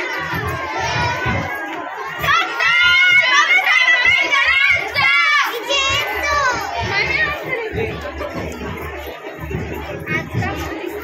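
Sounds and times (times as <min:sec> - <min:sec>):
children and women calling out: 0:00.0 - 0:11.0
crowd chatter: 0:00.0 - 0:11.0.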